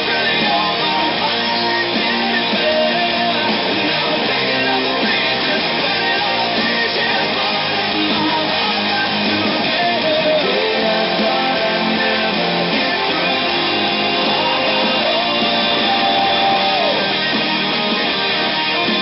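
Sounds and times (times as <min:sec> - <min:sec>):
electric guitar strummed through amp: 0:00.0 - 0:19.0
loud full-band rock recording: 0:00.0 - 0:19.0.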